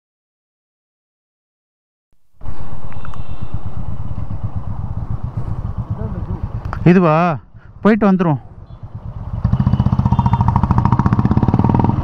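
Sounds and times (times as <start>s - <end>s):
motorcycle engine running: 2.4s - 12.0s.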